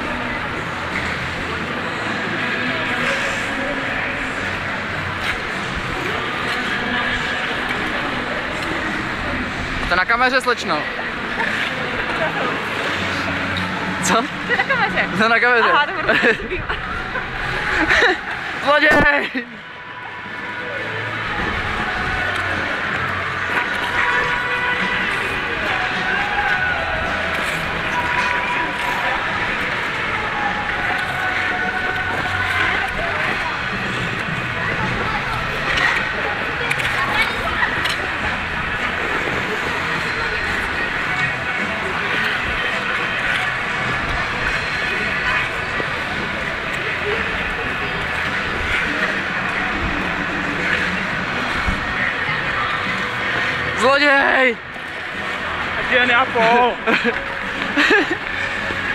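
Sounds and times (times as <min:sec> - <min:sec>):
chatter of voices: 0:00.0 - 0:58.9
music playing in a hall: 0:00.0 - 0:58.9.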